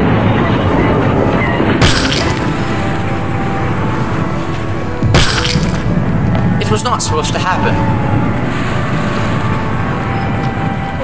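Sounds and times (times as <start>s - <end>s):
crash hits: 1.8s - 3.1s, 5.0s - 6.2s.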